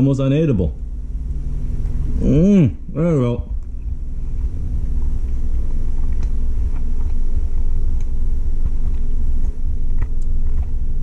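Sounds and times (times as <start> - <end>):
low rumbling chewing noise: 0.0 - 11.0
steady low hum: 0.0 - 11.0.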